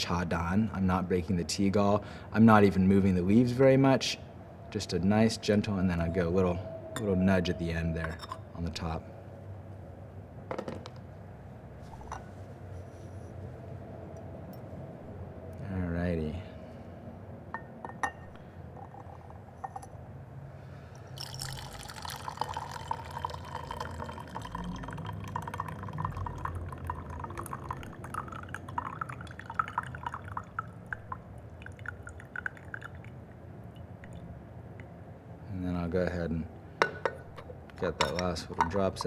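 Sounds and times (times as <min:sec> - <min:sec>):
tea trickling into pitcher: 0:20.9 - 0:34.9.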